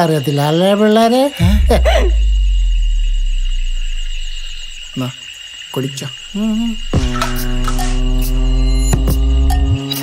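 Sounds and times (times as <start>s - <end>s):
high insect trill: 0.0s - 10.0s
deep low rumble: 1.4s - 5.0s, 6.3s - 8.9s.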